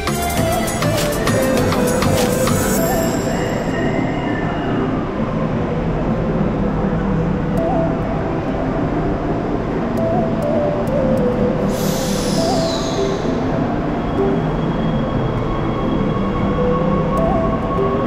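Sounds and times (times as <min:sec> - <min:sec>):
train rumble and motor whine: 0:00.0 - 0:18.0
high falling screech: 0:11.7 - 0:14.3.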